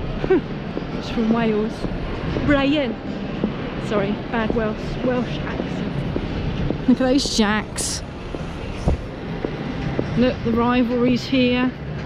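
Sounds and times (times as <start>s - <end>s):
low rumble of exhibition hall: 0.0s - 12.0s.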